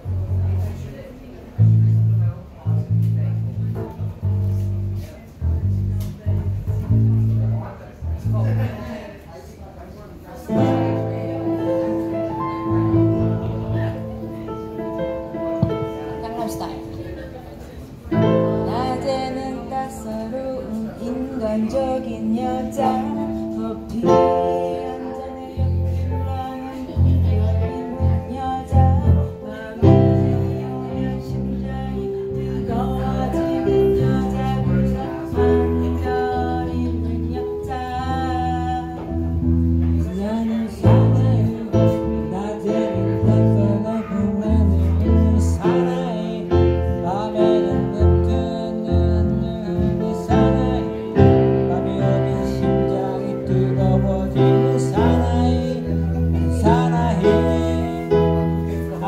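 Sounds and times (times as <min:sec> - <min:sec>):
electric bass guitar low notes: 0:00.0 - 0:09.0, 0:10.4 - 0:59.0
electric keyboard chords: 0:10.5 - 0:59.0
woman singing slow melody: 0:18.2 - 0:39.4, 0:40.0 - 0:59.0.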